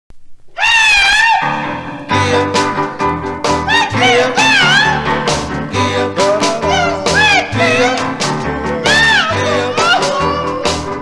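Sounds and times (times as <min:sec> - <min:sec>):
high wavering falsetto cry: 0:00.6 - 0:01.9, 0:03.7 - 0:05.0, 0:06.6 - 0:08.1, 0:08.9 - 0:11.0
doo-wop group music: 0:01.4 - 0:11.0.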